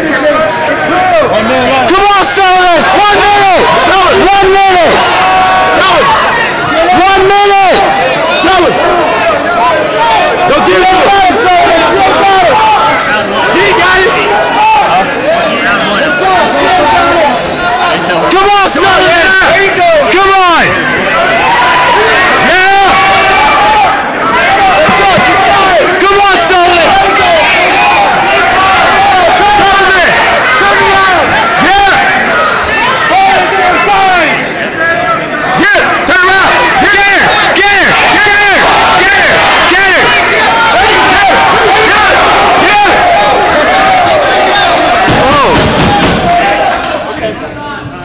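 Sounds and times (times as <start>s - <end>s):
crowd hubbub: 0.0s - 48.0s
spectators shouting: 0.0s - 48.0s.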